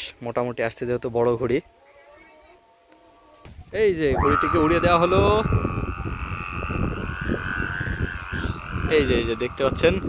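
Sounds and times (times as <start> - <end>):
kite bow humming: 1.8 - 10.0
wind rumble on microphone: 3.5 - 10.0.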